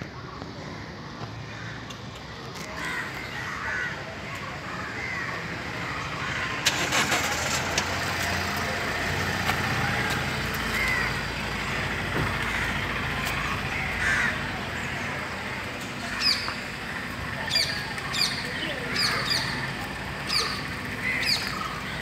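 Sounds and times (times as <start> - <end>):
crows cawing: 0.7 - 2.0, 2.8 - 6.6, 10.6 - 15.4, 16.0 - 16.6, 17.5 - 19.7, 20.3 - 22.0
vehicle engine running: 4.6 - 22.0.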